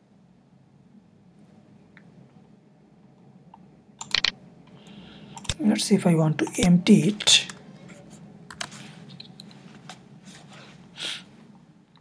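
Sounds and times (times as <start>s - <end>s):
computer mouse clicks: 3.5s - 4.3s, 5.4s - 5.6s, 8.5s - 9.5s.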